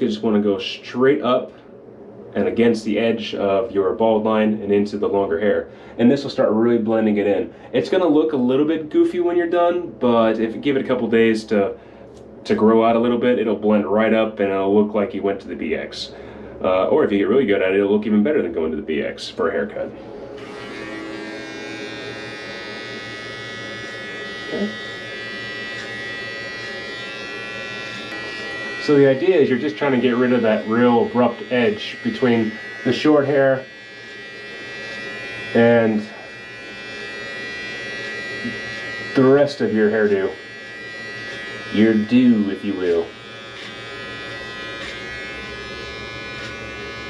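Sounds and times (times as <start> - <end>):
electric hair clippers buzzing: 20.3 - 47.0.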